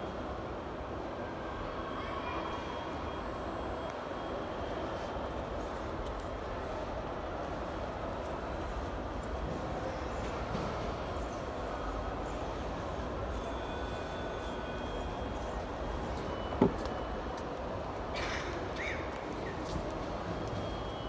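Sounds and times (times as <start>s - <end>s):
airport terminal hall rumble: 0.0s - 21.0s.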